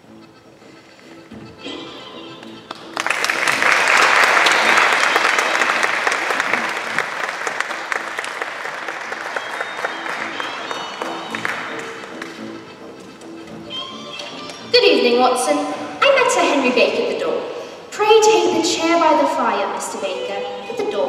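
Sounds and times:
quiet music with held notes: 0.0 - 5.9, 8.8 - 21.0
audience applauding: 2.4 - 13.2.

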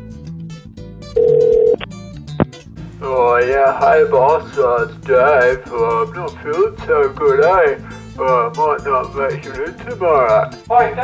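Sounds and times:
background music: 0.0 - 11.0
telephone tone: 1.2 - 1.8.

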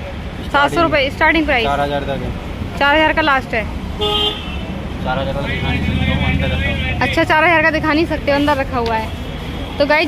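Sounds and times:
low traffic rumble: 0.0 - 10.0
voices: 0.0 - 10.0
horn toot: 4.0 - 4.7.

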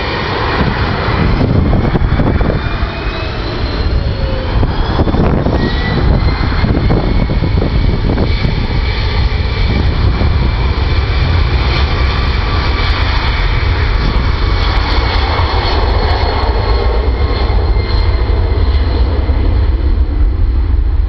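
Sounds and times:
jet engines at takeoff: 0.0 - 21.0.

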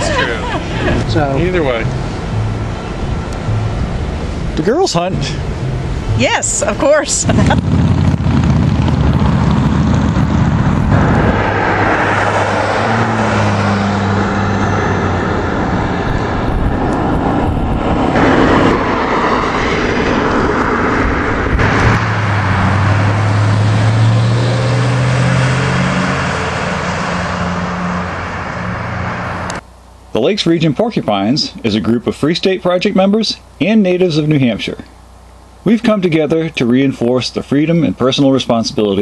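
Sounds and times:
cars passing close by: 0.0 - 29.6
steady traffic roar: 0.0 - 39.0.

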